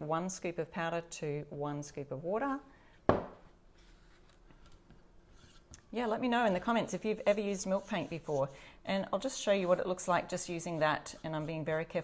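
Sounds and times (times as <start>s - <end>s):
paintbrush brushing on wood: 5.3s - 8.5s, 9.2s - 12.0s
woman's voice: 5.9s - 12.0s.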